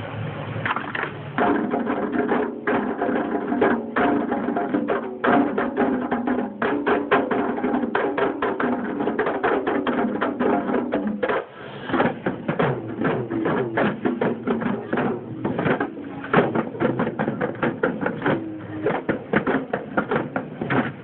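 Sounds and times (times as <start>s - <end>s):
barrel drums playing fast: 1.4s - 21.0s
voices calling: 1.9s - 21.0s.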